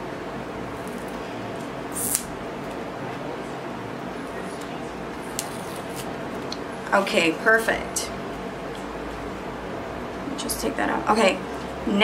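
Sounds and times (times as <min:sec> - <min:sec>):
electric fan: 0:00.0 - 0:12.0.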